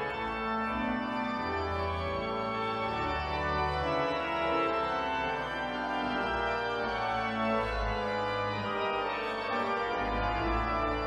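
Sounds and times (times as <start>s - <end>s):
church organ playing chords: 0.0s - 11.0s.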